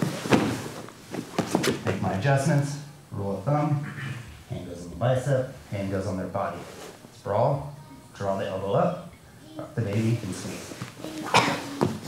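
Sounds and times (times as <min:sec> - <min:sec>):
bodies thudding on mat: 0:00.0 - 0:02.0.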